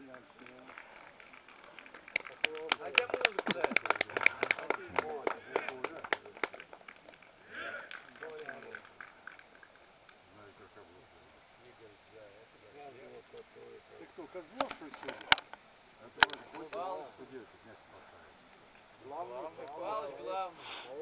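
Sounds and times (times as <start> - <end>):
distant indistinct voices: 0.0 - 21.0.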